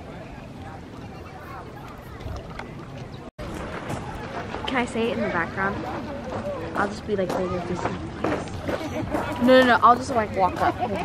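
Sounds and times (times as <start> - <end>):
faint voices: 0.0 - 11.0
wind rumbling on microphone: 0.0 - 11.0.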